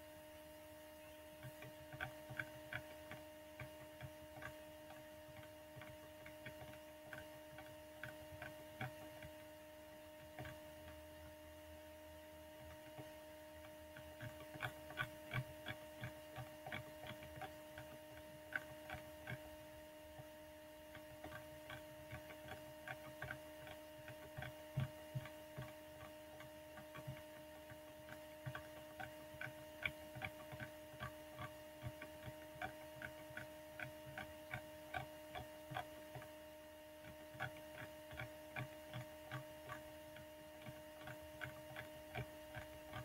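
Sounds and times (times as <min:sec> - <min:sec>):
steady electrical hum: 0:00.0 - 0:43.0
mouse scroll wheel clicking: 0:01.4 - 0:09.4, 0:20.9 - 0:36.3, 0:40.6 - 0:43.0.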